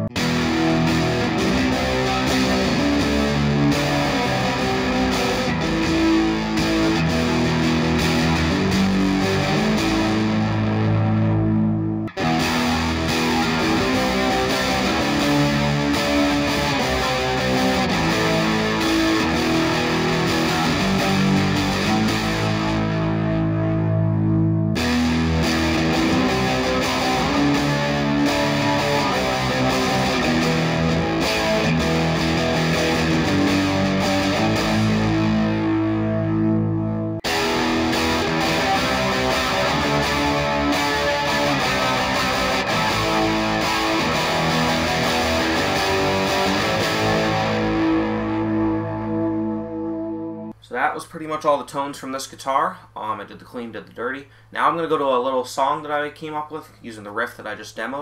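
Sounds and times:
distorted electric guitar riff: 0.0 - 50.6.

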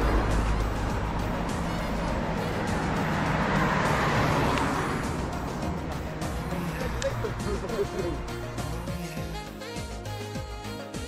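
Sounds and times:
music with vocals: 0.0 - 11.0.

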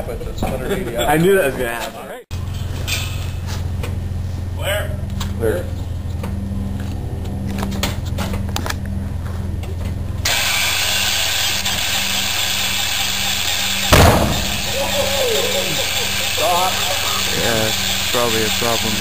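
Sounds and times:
radial engine cranking: 10.2 - 19.0
engine backfire bang: 13.5 - 15.6
person exclaiming: 14.7 - 17.1.

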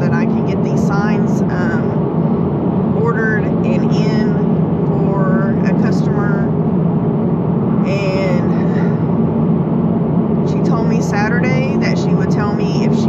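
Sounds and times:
woman's voice: 0.0 - 2.0, 3.0 - 6.5, 7.8 - 9.0, 10.5 - 13.0
car cabin road noise: 0.0 - 13.0.

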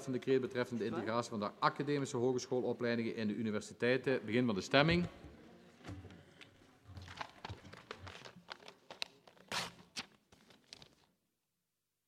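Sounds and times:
soft rustling: 5.5 - 11.1.

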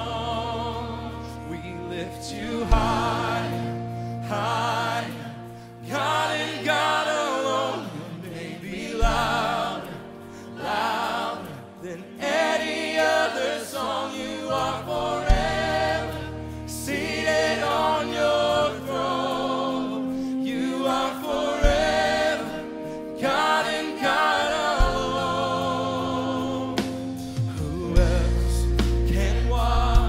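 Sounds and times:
worship band and choir singing: 0.0 - 30.0.

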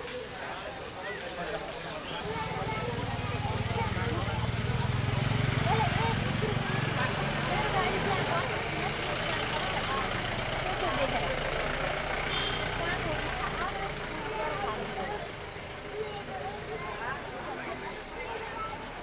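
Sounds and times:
many people talking: 0.0 - 19.0
vehicle engine idling: 2.2 - 18.2.

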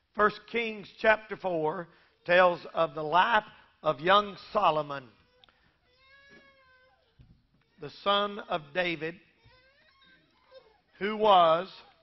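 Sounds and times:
faint high-pitched cry: 5.2 - 7.8, 9.4 - 11.0.

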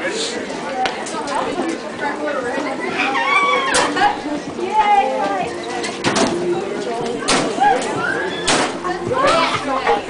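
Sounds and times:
students chattering: 0.0 - 10.0.

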